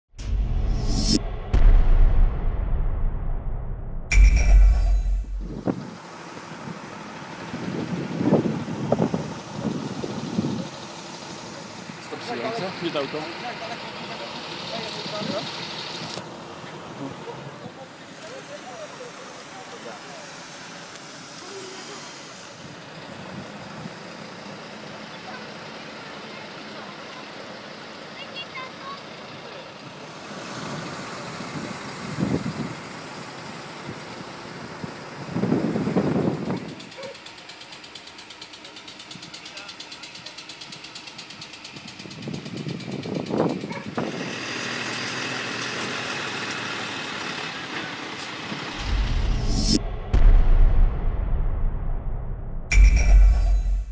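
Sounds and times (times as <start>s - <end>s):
vehicle noise: 0.1s - 53.9s
music with heavy bass: 0.2s - 5.7s, 48.8s - 53.9s.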